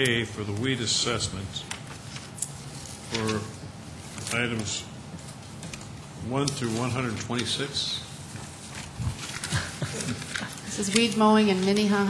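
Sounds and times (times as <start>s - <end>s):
low room noise: 0.0s - 12.0s
person chuckling into microphone: 9.2s - 10.7s.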